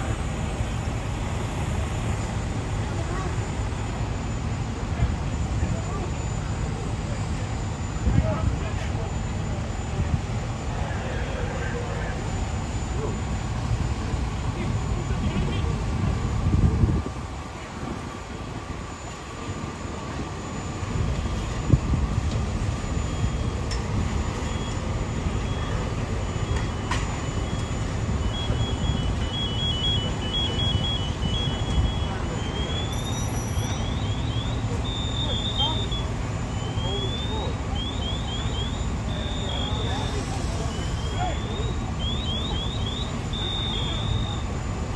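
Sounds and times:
fire truck engines running: 0:00.0 - 0:44.9
electronic alarm beeping: 0:18.9 - 0:44.9
faint distant voices: 0:23.4 - 0:44.9.

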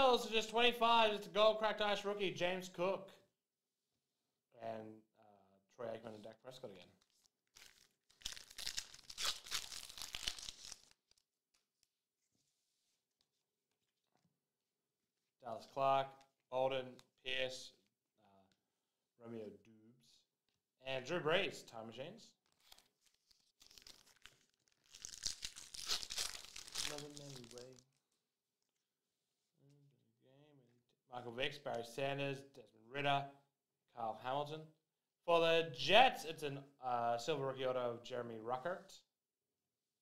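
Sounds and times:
wrapper tearing and crinkling: 0:07.0 - 0:11.9, 0:22.4 - 0:28.0.

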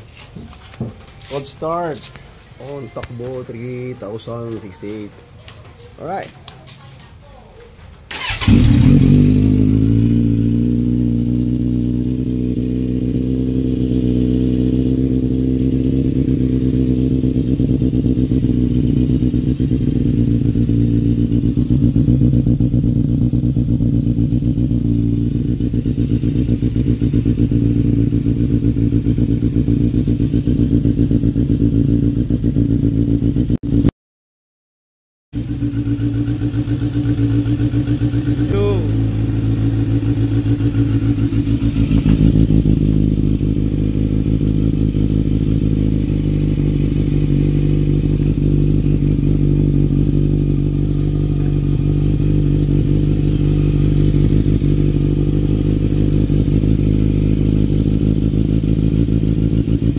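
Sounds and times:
motorcycle engine idling: 0:00.4 - 0:33.9, 0:35.4 - 0:59.9.

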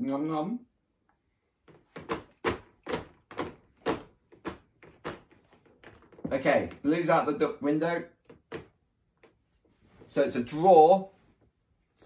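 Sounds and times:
baby banging on plastic tray: 0:01.7 - 0:06.8.

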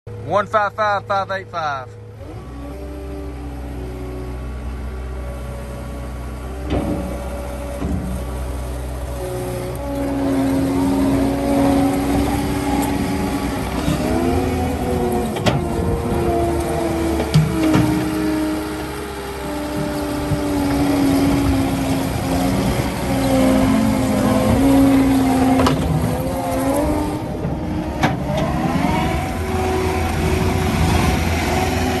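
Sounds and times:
diesel engine running: 0:00.1 - 0:32.0
rubber tracks whining: 0:01.9 - 0:32.0.

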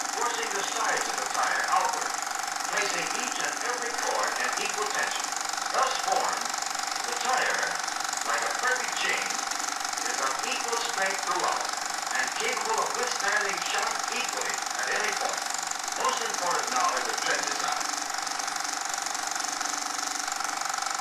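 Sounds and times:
mechanical clatter: 0:00.0 - 0:21.0
steady hum: 0:00.0 - 0:21.0
indistinct voice: 0:02.7 - 0:05.2, 0:05.8 - 0:06.4, 0:10.0 - 0:15.4, 0:16.0 - 0:17.8.

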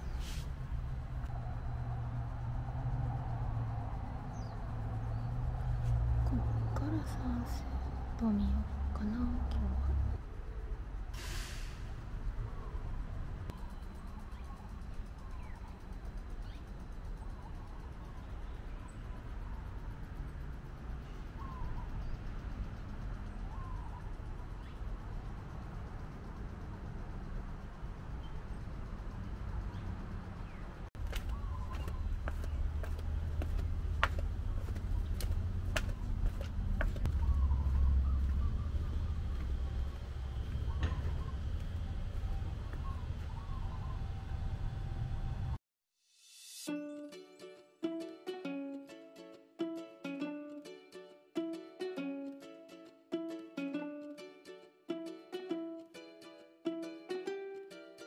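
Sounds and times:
steady low rumble: 0:00.0 - 0:11.1, 0:11.8 - 0:45.6
bird chirps: 0:04.2 - 0:05.4, 0:12.4 - 0:20.0, 0:21.0 - 0:22.4, 0:23.2 - 0:25.0, 0:29.5 - 0:32.6, 0:37.0 - 0:44.4.

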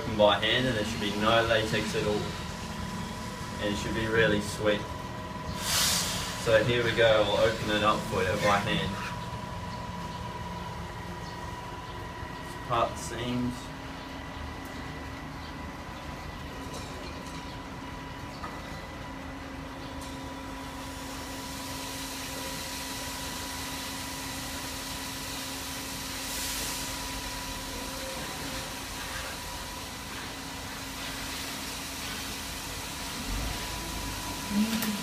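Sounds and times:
air conditioner humming: 0:00.0 - 0:35.0.

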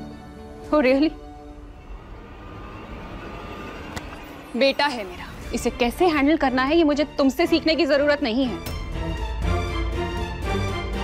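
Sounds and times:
low drone score: 0:00.3 - 0:06.0.

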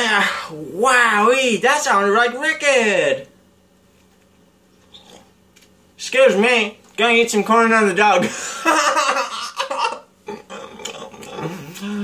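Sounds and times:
man laughing: 0:08.2 - 0:10.6.

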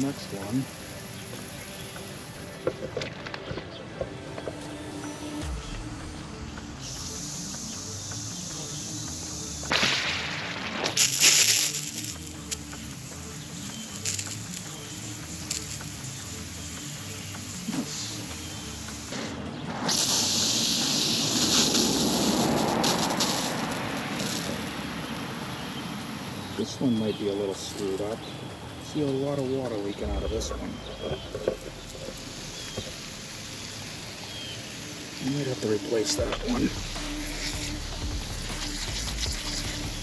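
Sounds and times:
sprinkler spraying water: 0:00.0 - 0:40.0.

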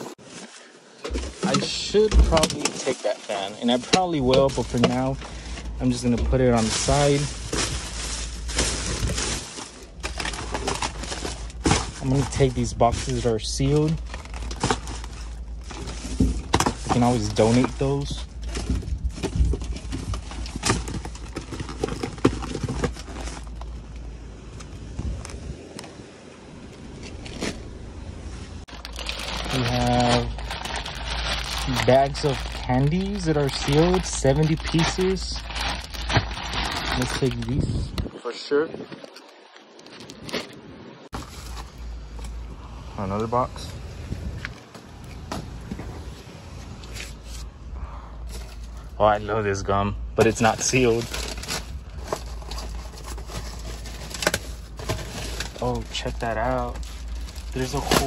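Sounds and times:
cardboard boxes being handled: 0:00.0 - 0:23.6
plastic bags rustling: 0:00.0 - 0:24.0, 0:28.6 - 0:42.5, 0:50.1 - 0:58.0
low rumble: 0:04.1 - 0:38.3, 0:41.0 - 0:58.0.

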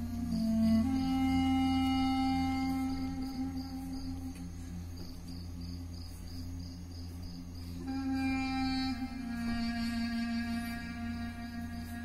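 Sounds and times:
ambient music with low drone: 0:00.0 - 0:12.0.

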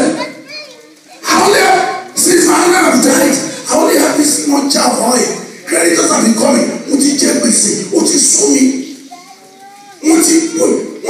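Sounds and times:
man talking through microphone: 0:01.2 - 0:09.1, 0:10.0 - 0:11.0.

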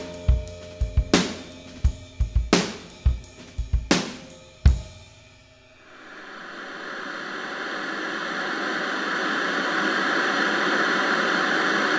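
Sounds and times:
cymbal ringing: 0:00.0 - 0:07.8
television static hiss: 0:02.6 - 0:11.9.

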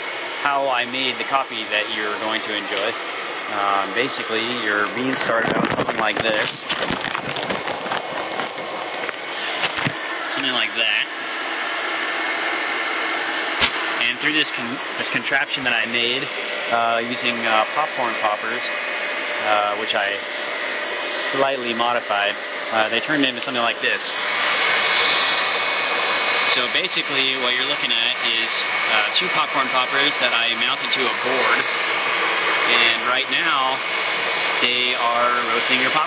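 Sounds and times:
hiss of fan-blown hot air: 0:00.0 - 0:06.8, 0:08.0 - 0:36.0
popcorn popper coffee roaster rushing: 0:00.0 - 0:36.0
sharp clicks and rustles: 0:04.8 - 0:10.0.

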